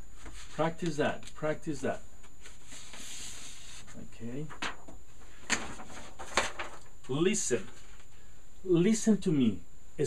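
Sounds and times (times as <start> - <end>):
paper sheets rustling and sliding: 0.2 - 0.9, 2.4 - 6.9.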